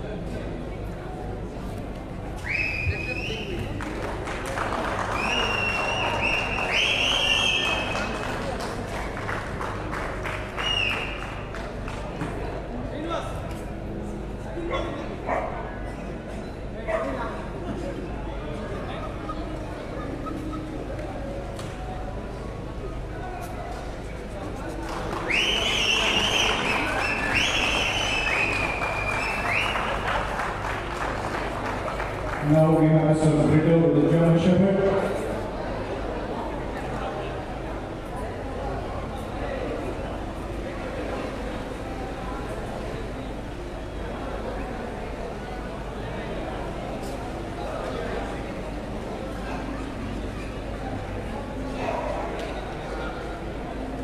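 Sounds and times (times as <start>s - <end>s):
long high whistles: 2.4s - 3.6s, 5.2s - 7.9s, 25.3s - 30.0s
spectators applauding and cheering: 2.4s - 12.6s, 24.7s - 33.6s.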